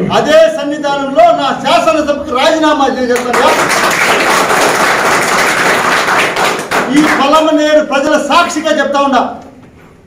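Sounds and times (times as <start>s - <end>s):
group of people clapping: 3.1s - 7.6s.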